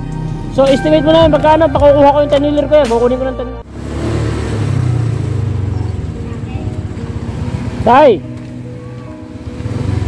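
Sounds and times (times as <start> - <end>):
road and wind noise: 0.0 - 10.0
small motorcycle engine rumble: 3.7 - 10.0.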